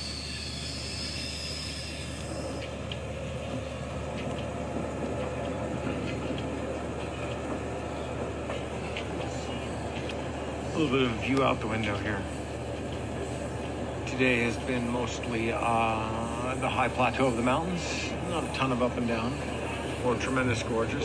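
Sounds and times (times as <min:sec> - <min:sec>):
high wheel squeal: 0:00.0 - 0:02.8, 0:10.6 - 0:21.0
train rumble on rails: 0:00.0 - 0:21.0.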